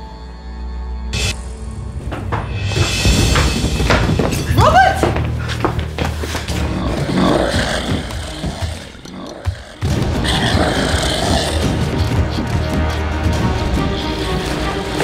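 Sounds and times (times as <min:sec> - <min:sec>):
dramatic film score: 0:00.0 - 0:15.0
fight thuds and impacts: 0:02.0 - 0:05.4.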